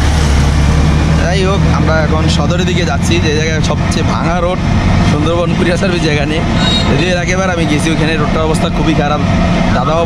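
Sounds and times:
auto-rickshaw engine running: 0.0 - 10.0
traffic: 0.0 - 10.0
voices talking: 1.2 - 10.0.

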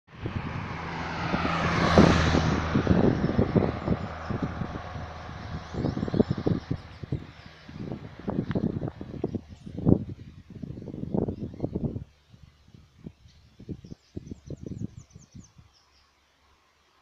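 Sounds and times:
vehicle passing close by: 0.1 - 9.8
wind buffeting microphone: 0.1 - 15.8.

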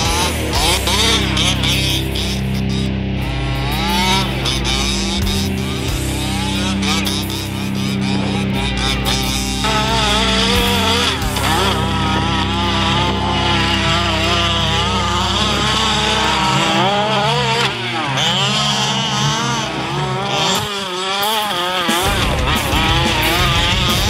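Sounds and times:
two-stroke engine revving: 0.0 - 24.0.

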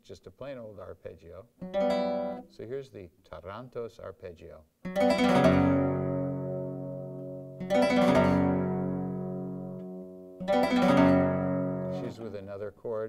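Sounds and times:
guitar chord arpeggio: 1.6 - 2.5, 4.9 - 12.4.

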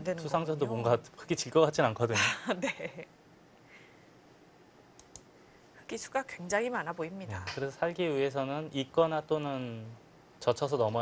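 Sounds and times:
computer mouse clicks: 5.0 - 5.3.

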